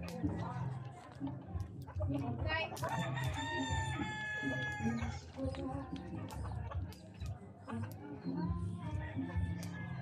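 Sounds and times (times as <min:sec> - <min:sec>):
rooster crowing: 0:03.0 - 0:05.0.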